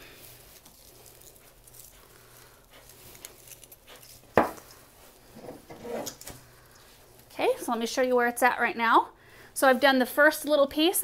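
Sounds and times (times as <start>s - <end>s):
foliage rustling: 0.1s - 5.4s
soft scratches: 0.3s - 7.1s.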